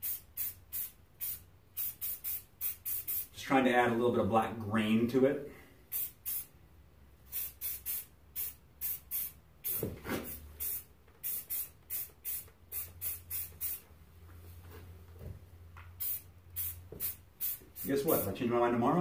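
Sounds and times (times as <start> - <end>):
spray paint can hissing: 0.0 - 3.4, 5.9 - 6.5, 7.3 - 13.9, 16.0 - 18.3.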